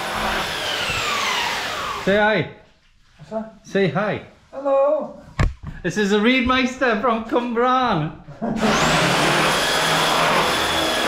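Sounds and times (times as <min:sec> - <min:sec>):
electric power tool running: 0:00.0 - 0:02.2, 0:08.6 - 0:11.0.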